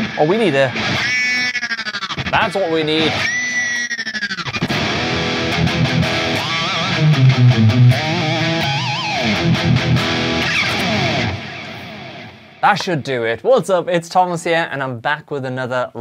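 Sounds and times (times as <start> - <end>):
distorted electric guitar: 0.0 - 13.1.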